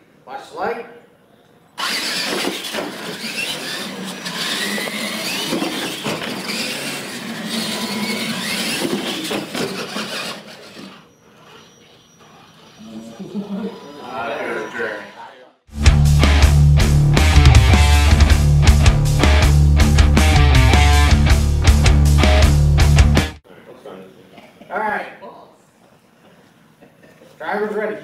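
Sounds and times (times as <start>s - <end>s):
rc truck motors whining: 1.8s - 12.8s
voices: 12.8s - 15.6s.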